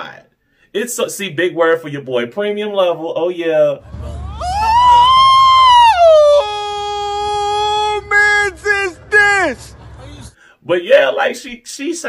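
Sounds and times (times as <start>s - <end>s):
man howling high note: 3.8s - 9.6s
low street rumble: 3.8s - 10.4s.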